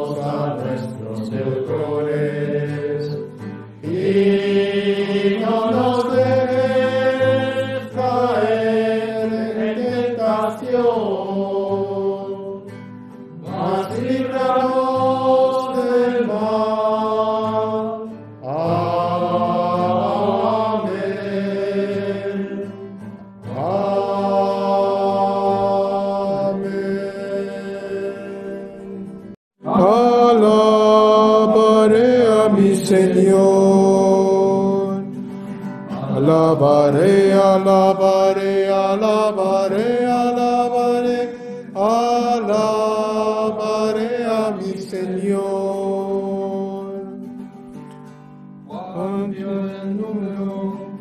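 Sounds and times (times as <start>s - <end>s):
men singing a sacred chant: 0.0s - 12.7s, 13.4s - 22.9s, 23.5s - 28.8s, 29.7s - 35.1s, 36.0s - 47.2s, 48.7s - 51.0s.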